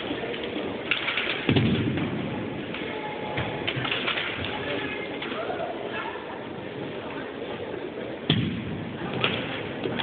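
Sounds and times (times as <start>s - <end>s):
low murmur of voices: 0.0s - 10.0s.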